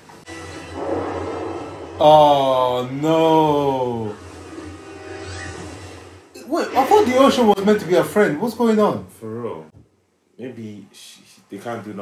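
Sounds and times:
film soundtrack drone: 0.1 - 7.6.

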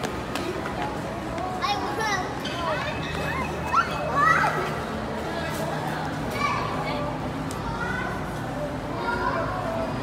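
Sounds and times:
children calling out and chattering: 0.0 - 10.0
children's high-pitched shouts: 3.3 - 4.8.

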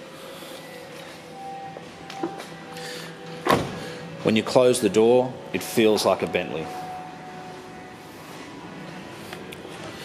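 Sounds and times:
faint background music: 0.0 - 10.0
car door shutting: 3.4 - 3.8.

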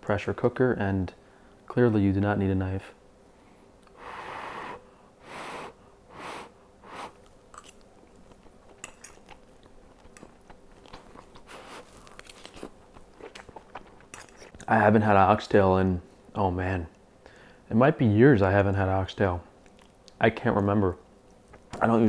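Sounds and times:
man chewing: 6.2 - 14.7.

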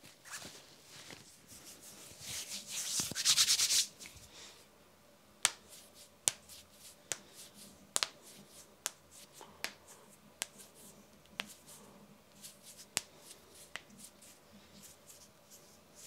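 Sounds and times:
hands rubbing together: 1.5 - 3.9.

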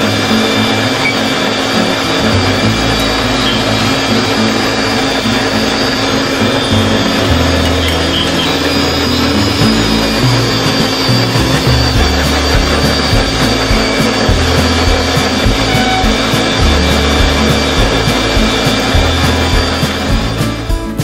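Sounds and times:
background music with bass line: 0.0 - 21.0
blenders whirring: 0.0 - 21.0.

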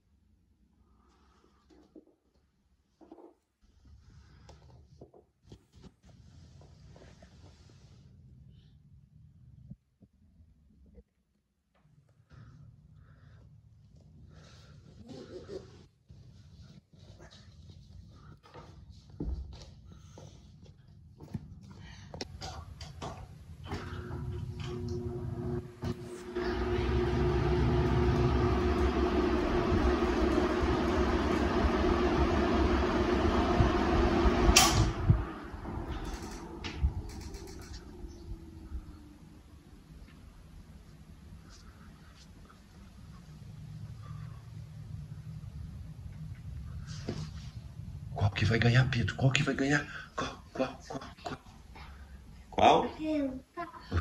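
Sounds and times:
fan blades blowing air: 21.8 - 50.7
fan motors humming: 21.8 - 52.9.

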